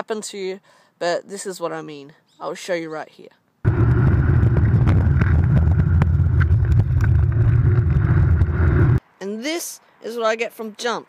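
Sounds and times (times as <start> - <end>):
wheels rumbling over pavement: 3.7 - 9.0
wind buffeting microphone: 3.7 - 9.0.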